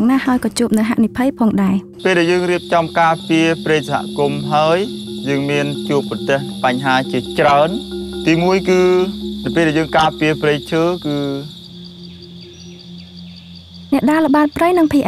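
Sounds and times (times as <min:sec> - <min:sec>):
insects droning: 0:00.0 - 0:15.0.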